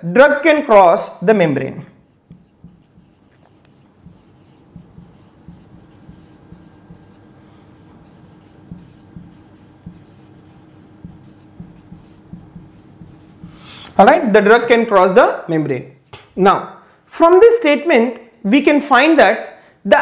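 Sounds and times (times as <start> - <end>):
faint steady hum: 1.6 - 15.9
marker pen writing on whiteboard: 2.0 - 14.0.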